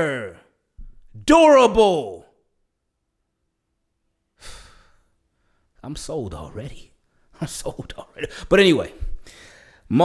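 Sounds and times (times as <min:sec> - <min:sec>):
man speaking: 0:00.0 - 0:00.5, 0:01.2 - 0:02.3, 0:05.8 - 0:09.2.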